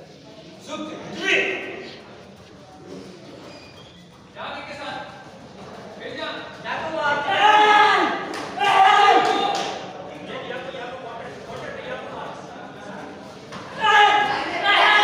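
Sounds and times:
men shouting loudly: 0:13.8 - 0:15.0.

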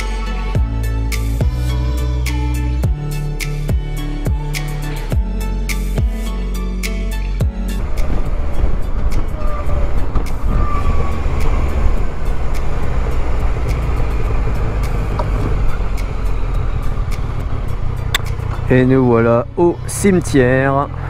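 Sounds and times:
background music: 0:00.0 - 0:21.0
wind and road noise: 0:07.3 - 0:21.0
motorcycle engine running: 0:07.8 - 0:21.0.

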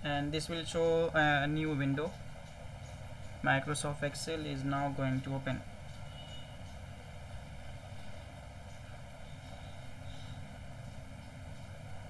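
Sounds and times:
low rumble with faint hiss: 0:00.0 - 0:12.0.

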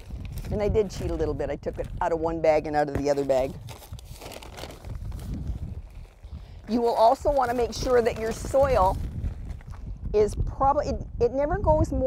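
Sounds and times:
soil rustling in plastic bag: 0:00.0 - 0:10.0.

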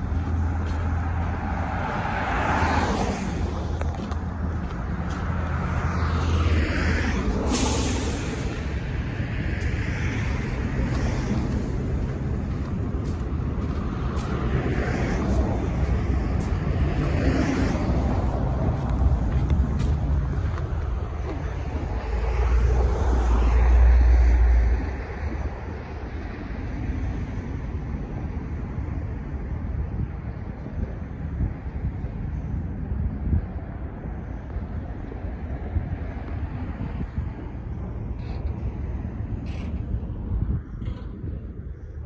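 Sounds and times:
road traffic: 0:00.0 - 0:42.0
wind buffeting microphone: 0:00.0 - 0:42.0.

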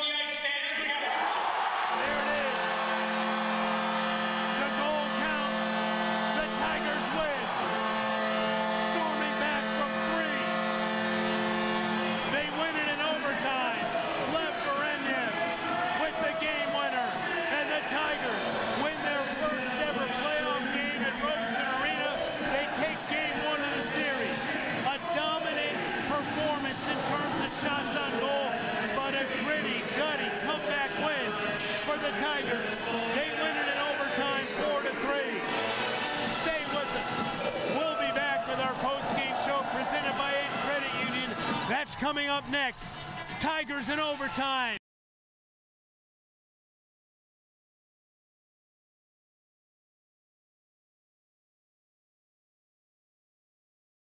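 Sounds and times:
crowd cheering: 0:00.0 - 0:44.8
arena goal horn blast: 0:01.6 - 0:42.1.

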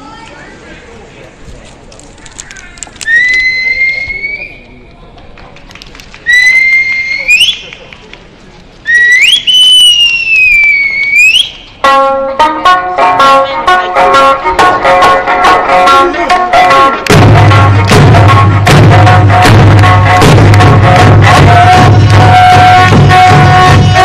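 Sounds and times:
shrill sliding whistles: 0:03.1 - 0:04.6, 0:08.9 - 0:11.6
folk music with drum strikes: 0:11.8 - 0:24.0.

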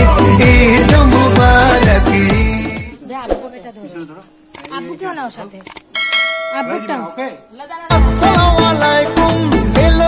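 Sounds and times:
voices: 0:02.9 - 0:08.9
bell-like chime: 0:06.0 - 0:08.0.

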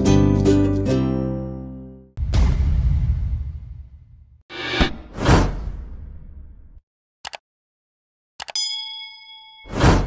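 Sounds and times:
rising whoosh: 0:04.5 - 0:06.3
mouse clicks: 0:07.2 - 0:07.4
notification bell ding: 0:08.6 - 0:10.0.

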